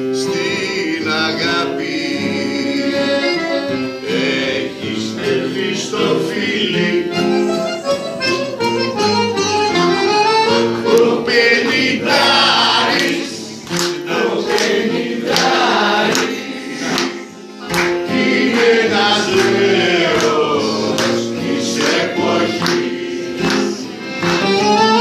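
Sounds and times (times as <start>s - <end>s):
voices singing: 0.0s - 8.4s, 10.5s - 25.0s
small band accompaniment: 0.0s - 25.0s.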